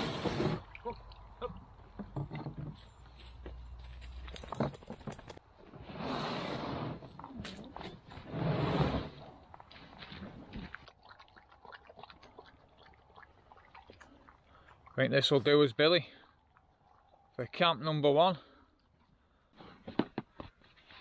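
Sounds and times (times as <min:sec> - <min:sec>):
canoe hull scraping on grass: 0:00.0 - 0:00.7, 0:05.6 - 0:07.2, 0:08.0 - 0:10.6.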